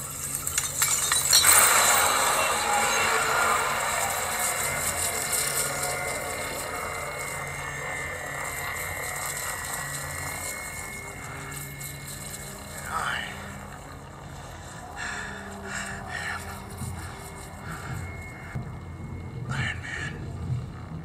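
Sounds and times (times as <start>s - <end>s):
swooping tone: 0.0s - 19.6s
low rumbling ambience: 0.0s - 21.0s.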